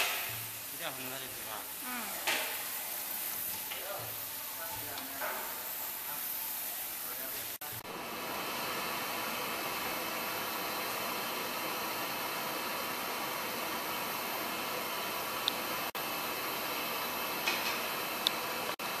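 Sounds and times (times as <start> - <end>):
electric motor and pump running: 0.0 - 19.0.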